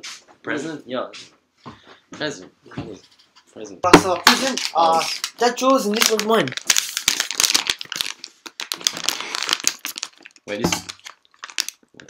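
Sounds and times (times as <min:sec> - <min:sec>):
plastic wrapping crinkling: 0:03.9 - 0:12.0.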